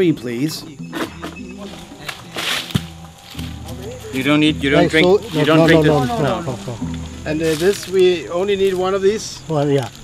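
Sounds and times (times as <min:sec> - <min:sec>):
background music: 0:00.0 - 0:09.5
fruit rustling through leaves: 0:01.6 - 0:10.0
fruit landing with a thud: 0:02.4 - 0:03.6.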